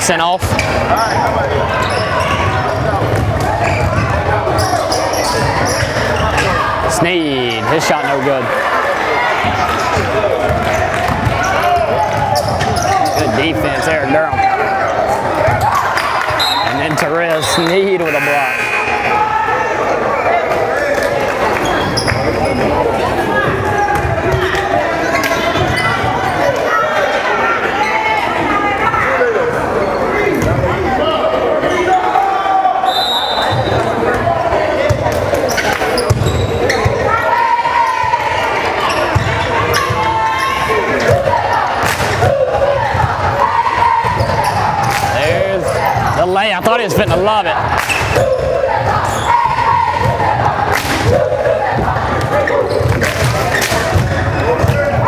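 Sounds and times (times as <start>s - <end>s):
echoing voices: 0.0s - 55.0s.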